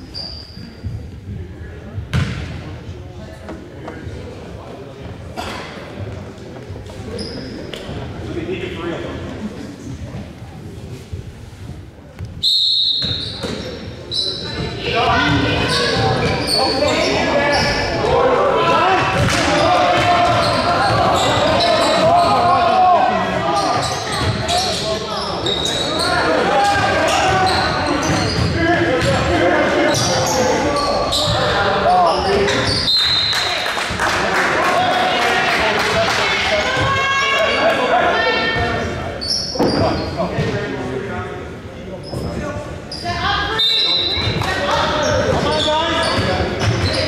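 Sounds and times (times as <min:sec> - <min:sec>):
sneaker squeaks: 0:00.0 - 0:01.2, 0:06.9 - 0:08.0, 0:12.3 - 0:18.0, 0:19.2 - 0:22.5, 0:23.5 - 0:29.1, 0:29.8 - 0:33.6, 0:38.5 - 0:40.6, 0:42.0 - 0:47.0
people shouting and talking: 0:00.0 - 0:47.0.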